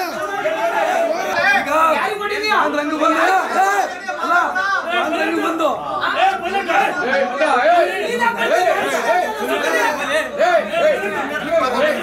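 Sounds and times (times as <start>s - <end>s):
men arguing loudly: 0.0s - 12.0s.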